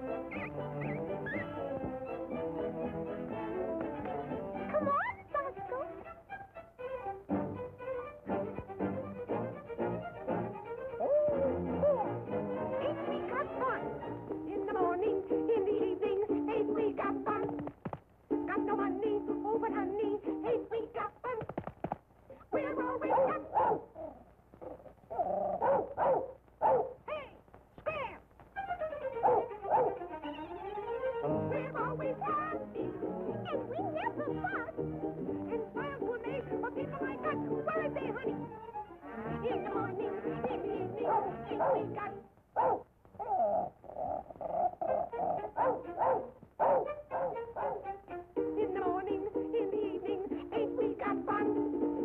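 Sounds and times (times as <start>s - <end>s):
musical accompaniment: 0.0s - 17.6s, 28.6s - 42.2s, 46.9s - 52.0s
cartoon dog yelping: 0.2s - 1.6s, 10.9s - 12.2s, 22.4s - 27.2s, 29.0s - 30.5s, 33.4s - 34.8s, 40.7s - 47.9s
cartoon voices yelping: 11.0s - 12.2s, 22.4s - 25.9s.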